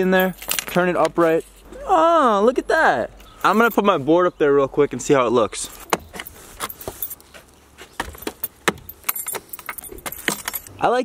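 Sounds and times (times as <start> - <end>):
keys jangling: 8.1 - 10.7.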